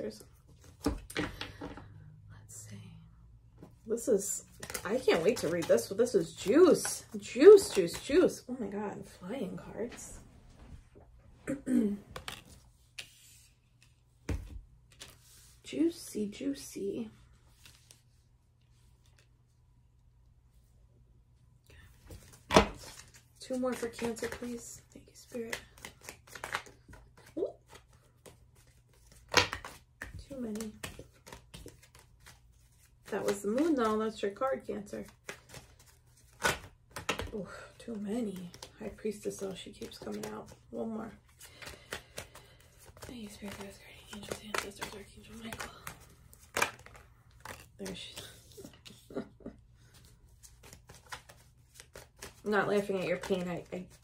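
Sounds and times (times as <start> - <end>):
cards being shuffled: 4.3 - 8.4, 12.1 - 15.6, 18.8 - 19.3, 22.0 - 54.0.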